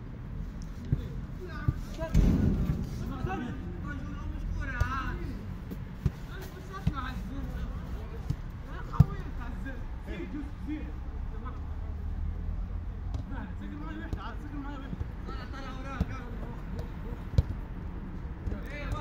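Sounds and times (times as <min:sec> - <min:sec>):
football kicks: 0:00.8 - 0:03.5, 0:08.2 - 0:09.3, 0:13.1 - 0:17.6.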